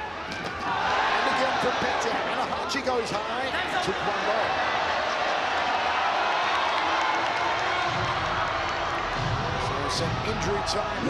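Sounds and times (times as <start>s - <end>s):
arena crowd voices: 0.0s - 11.0s.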